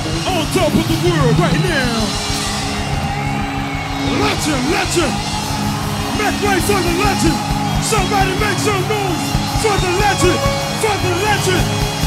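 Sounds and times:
live band music over speakers: 0:04.0 - 0:12.0.

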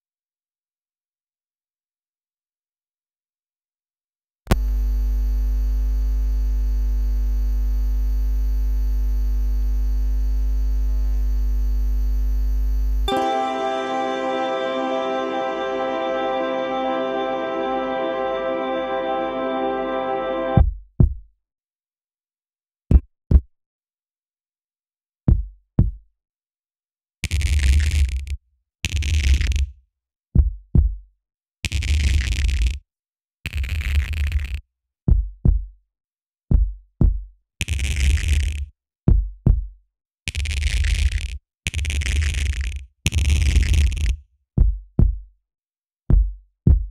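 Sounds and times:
electrical mains hum: 0:04.6 - 0:13.0.

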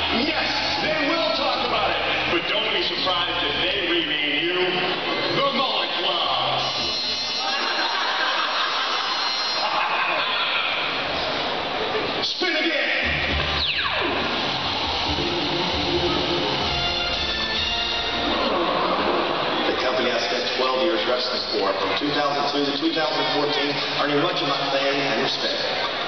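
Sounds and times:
music over public address: 0:00.0 - 0:09.7, 0:11.1 - 0:26.0
people talking: 0:00.0 - 0:11.2, 0:11.8 - 0:13.4, 0:18.3 - 0:26.0.

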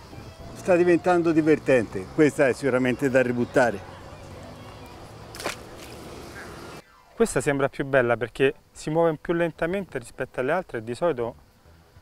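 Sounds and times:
outdoor background noise: 0:00.0 - 0:12.0
fish splashing into water: 0:05.3 - 0:06.1.

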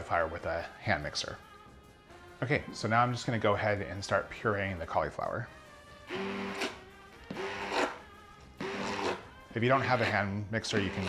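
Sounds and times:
immersion blender motor pulses: 0:06.1 - 0:08.0, 0:08.6 - 0:09.2.

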